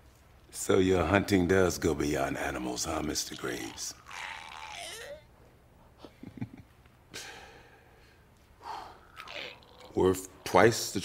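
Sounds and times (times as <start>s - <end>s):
person groaning: 3.6s - 5.3s.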